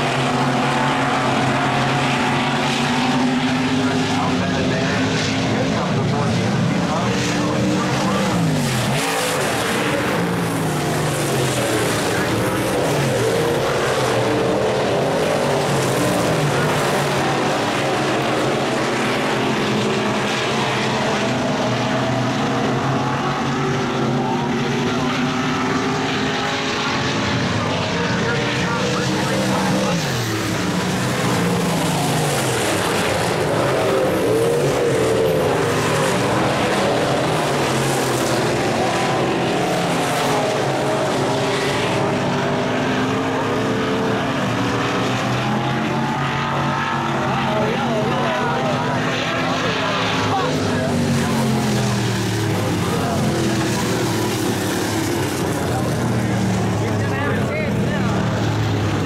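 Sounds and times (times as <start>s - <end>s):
racing car engines: 0.0s - 59.0s.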